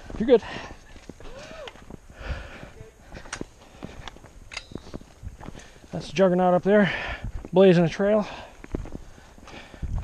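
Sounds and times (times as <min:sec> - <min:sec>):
footsteps on dirt and rock: 0:00.0 - 0:10.0.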